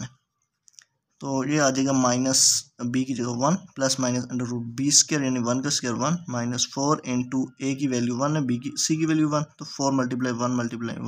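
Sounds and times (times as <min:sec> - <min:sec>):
man speaking: 0:01.2 - 0:11.0.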